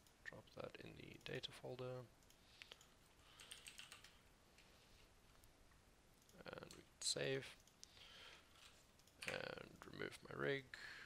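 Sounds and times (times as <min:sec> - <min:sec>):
keyboard typing: 0:02.2 - 0:04.2.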